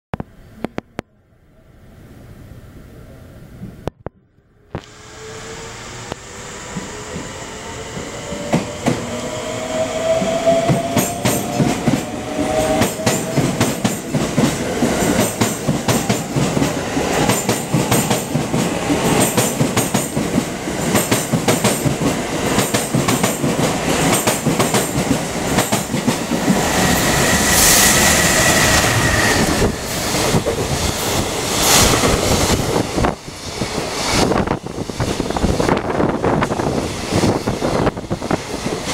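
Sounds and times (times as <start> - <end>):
electric locomotive whine and rumble: 0.4 - 38.9
train wheels clattering over rail joints: 12.8 - 27.0.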